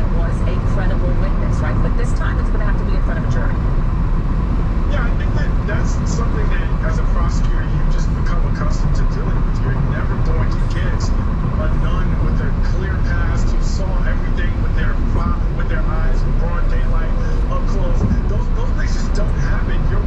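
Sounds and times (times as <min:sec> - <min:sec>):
muffled news broadcast talk: 0:00.0 - 0:03.7, 0:04.8 - 0:20.0
tyres rumbling on wet road: 0:00.0 - 0:20.0.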